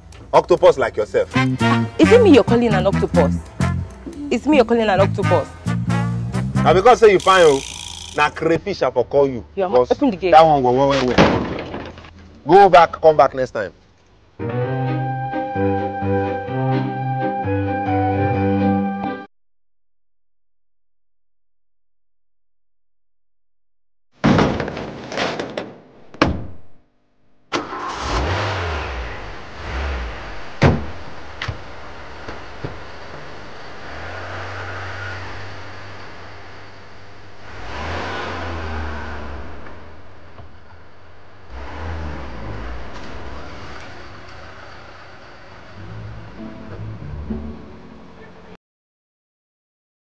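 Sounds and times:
car engine starting and revving: 0:00.0 - 0:08.5, 0:27.5 - 0:40.6, 0:41.4 - 0:47.5.

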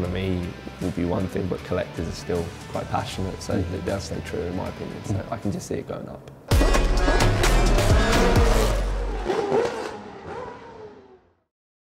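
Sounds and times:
heavy bass rumble: 0:06.5 - 0:09.3
cinematic music: 0:06.5 - 0:09.9.

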